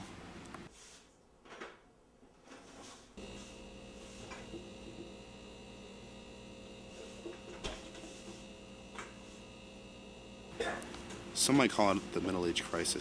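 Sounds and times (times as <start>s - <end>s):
electrical hum: 0.0s - 13.0s.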